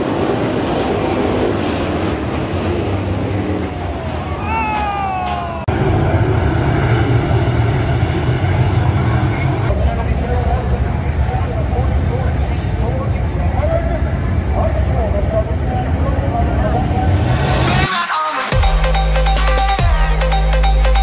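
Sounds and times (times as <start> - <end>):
race car engines: 0.0 - 18.4
crowd noise: 3.5 - 6.1, 9.3 - 21.0
spectator's falling cry: 4.1 - 5.7.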